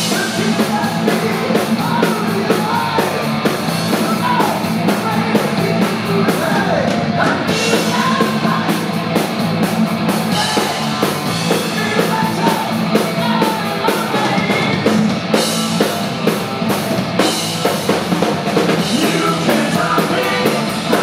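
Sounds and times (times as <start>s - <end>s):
bass guitar: 0.0s - 21.0s
distorted electric guitar: 0.0s - 21.0s
drum kit: 0.0s - 21.0s.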